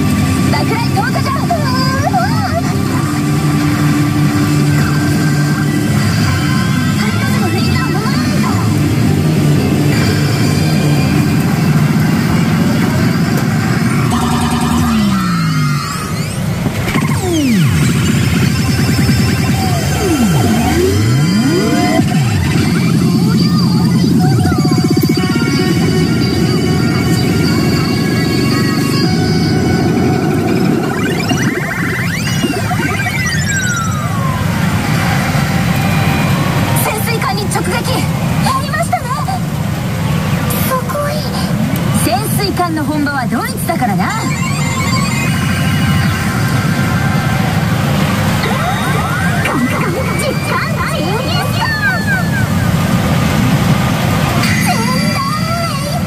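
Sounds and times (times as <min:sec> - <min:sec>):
electronic game music: 0:00.0 - 0:38.2, 0:43.8 - 0:51.9
sweeping pitch effects: 0:00.0 - 0:40.8, 0:43.3 - 0:56.0
dense din of machines: 0:00.0 - 0:56.0
pachinko parlour rumble: 0:00.0 - 0:56.0
long falling glide: 0:08.6 - 0:38.8.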